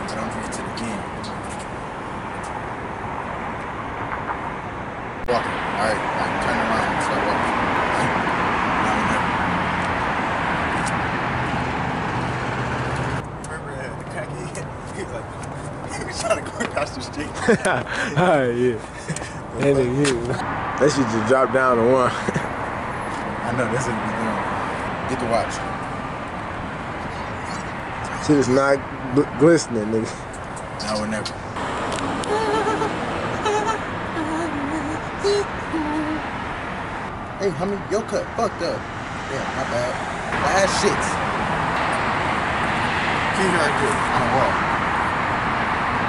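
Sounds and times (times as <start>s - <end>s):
road traffic engine hum: 0.0s - 46.0s
wavering voice-like sounds: 32.2s - 36.2s.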